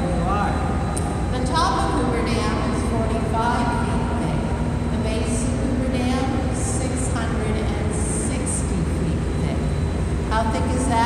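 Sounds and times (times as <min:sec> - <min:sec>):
constant hum tone: 0:00.0 - 0:11.0
low rumble of generators and water: 0:00.0 - 0:11.0.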